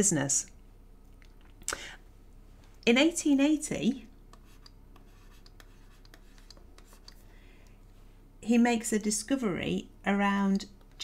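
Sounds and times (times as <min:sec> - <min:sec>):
stylus tapping and scratching: 0:04.2 - 0:07.3.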